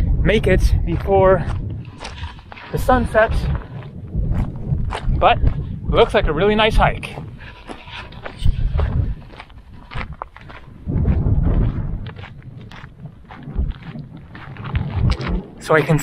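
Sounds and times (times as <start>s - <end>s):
wind rumbling on microphone: 0.0s - 16.0s
footsteps on gravel: 0.7s - 16.0s.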